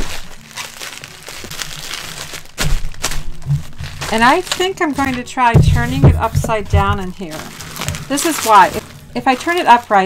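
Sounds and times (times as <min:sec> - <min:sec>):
bubble wrap cracks: 0:00.0 - 0:05.7, 0:06.6 - 0:10.0
bubble wrap crinkling: 0:00.0 - 0:10.0.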